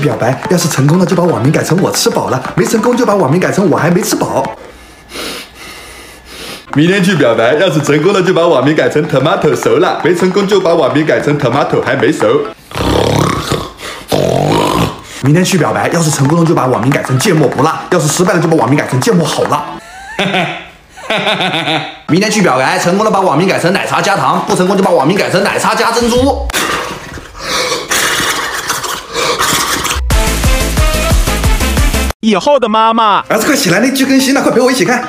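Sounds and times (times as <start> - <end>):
harsh growl of frustration: 12.7 - 15.0.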